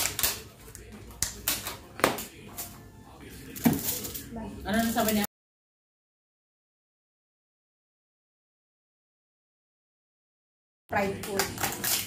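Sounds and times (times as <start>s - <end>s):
rustling handling noise: 3.4s - 5.2s.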